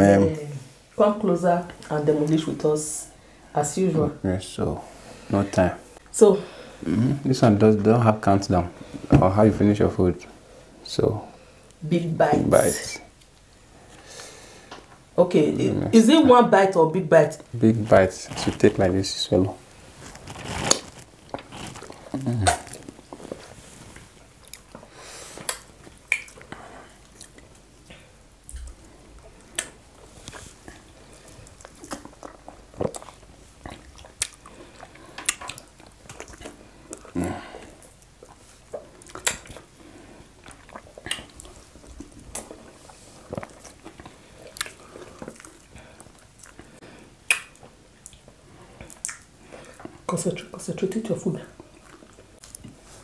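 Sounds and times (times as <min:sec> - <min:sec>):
chewing and wet mouth sounds: 0:19.8 - 0:53.0.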